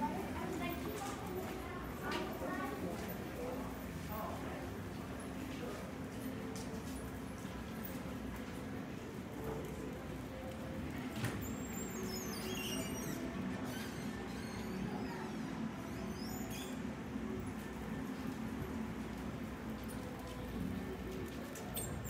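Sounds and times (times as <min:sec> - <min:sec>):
steady background hum: 0:00.0 - 0:22.0.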